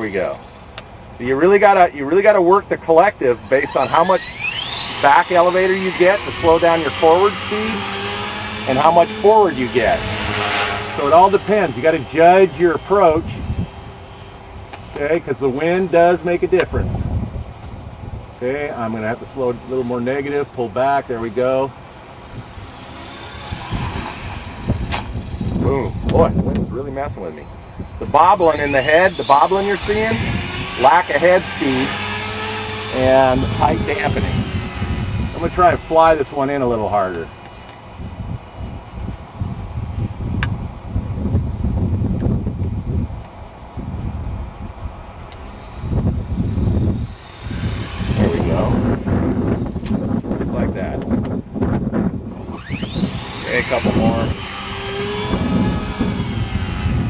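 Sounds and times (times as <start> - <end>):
electric motor whine rising: 0.0 - 1.8, 3.4 - 18.1, 18.9 - 57.0
helicopter rotor whooshing: 0.0 - 2.3, 3.3 - 57.0
wind rumbling on microphone: 3.8 - 18.7, 22.3 - 57.0
sharp click: 24.9 - 25.1.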